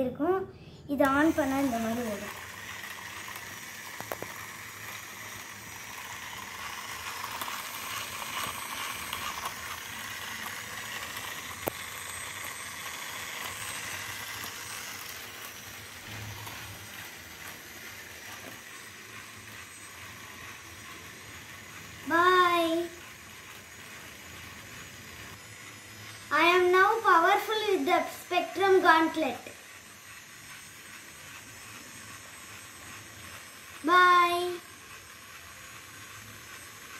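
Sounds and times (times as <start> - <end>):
toy motor whirring plastic gears: 0.9 - 36.9.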